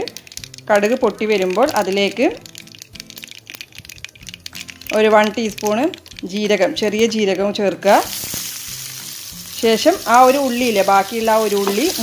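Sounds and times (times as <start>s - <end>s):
faint background music: 0.0s - 12.0s
seeds sizzling in hot oil: 0.0s - 12.0s.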